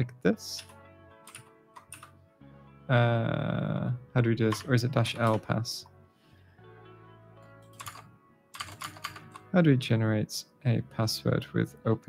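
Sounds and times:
quiet background music: 0.0 - 12.0
keystrokes on computer keyboard: 0.6 - 2.1, 4.5 - 5.4, 7.6 - 9.5.

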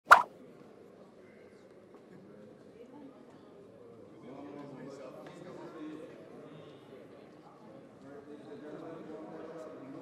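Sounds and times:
short sharp pop: 0.0 - 0.3
faint background murmur: 0.3 - 10.0.

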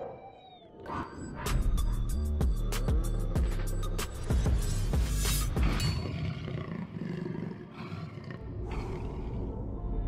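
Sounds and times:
background music: 0.0 - 10.0
roar: 5.6 - 10.0.

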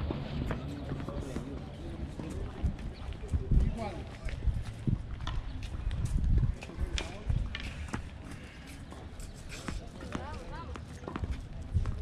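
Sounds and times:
wind buffeting microphone: 1.8 - 8.5.

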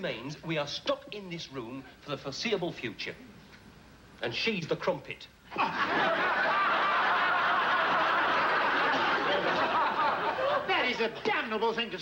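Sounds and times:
audience laughing: 5.5 - 11.2.

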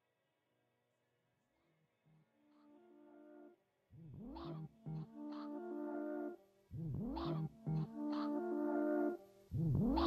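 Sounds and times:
held synthesizer chord: 2.4 - 10.0
synthesizer pitch sweep: 4.0 - 10.0.

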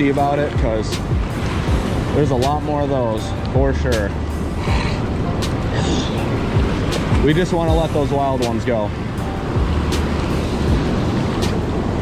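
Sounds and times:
river water rushing through rapids: 0.0 - 12.0.

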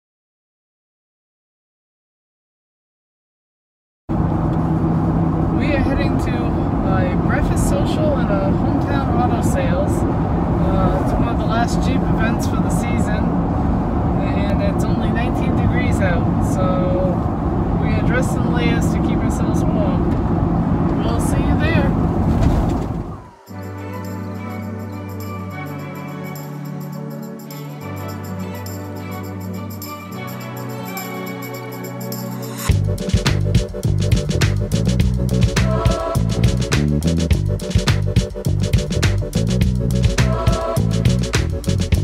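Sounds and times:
road and engine drone in a car: 4.1 - 23.6, 32.6 - 42.0
woman talking: 5.6 - 10.0, 10.6 - 13.3, 14.2 - 17.2, 17.8 - 20.0, 21.0 - 22.0
organ music: 23.2 - 42.0.

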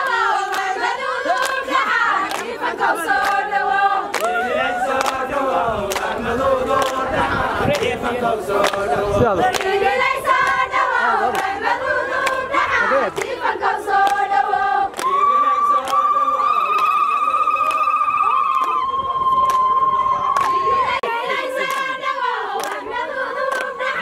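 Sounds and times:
crowd singing: 0.0 - 16.5, 20.4 - 24.0
hand clapping: 0.5 - 0.7, 2.2 - 2.6, 3.2 - 3.4, 4.1 - 4.4, 5.0 - 5.2, 5.9 - 6.1, 6.8 - 7.0, 8.6 - 8.8, 9.4 - 9.8, 12.2 - 12.4, 13.1 - 13.4, 14.0 - 14.3, 14.9 - 16.1, 20.4 - 20.6, 21.6 - 22.0, 22.6 - 22.9, 23.5 - 23.7.

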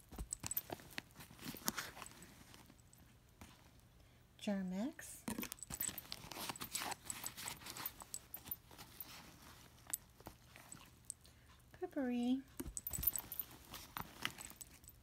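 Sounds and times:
rummaging in a handbag: 0.0 - 3.8, 5.2 - 11.2, 12.5 - 15.0.

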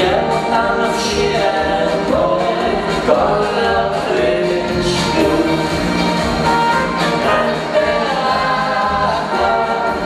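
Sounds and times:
bass guitar: 0.0 - 10.0
drums: 0.0 - 10.0.

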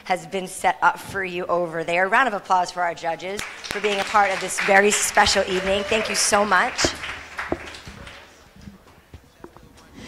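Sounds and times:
applause: 3.4 - 8.5.

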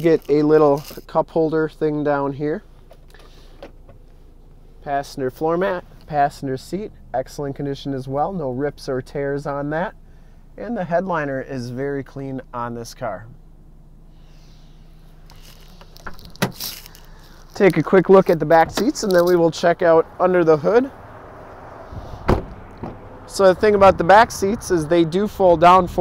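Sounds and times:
handling rustles and clicks: 0.0 - 1.1, 15.2 - 19.5
man speaking: 0.0 - 2.6, 4.8 - 10.0, 10.6 - 13.4, 17.5 - 21.0, 23.3 - 26.0
car cabin hum: 1.6 - 26.0.

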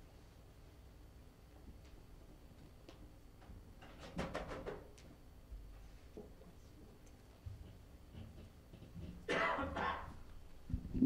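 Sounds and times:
person coughing: 9.3 - 10.2.

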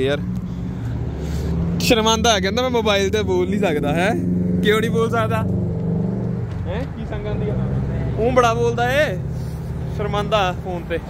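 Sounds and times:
street traffic: 0.0 - 11.0
vehicle engine running: 0.0 - 11.0.

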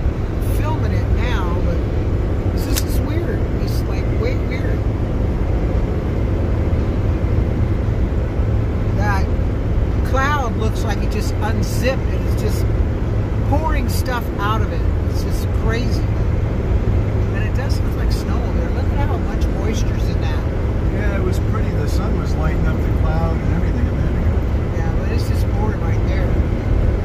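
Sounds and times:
car road and wind rumble: 0.0 - 27.0.

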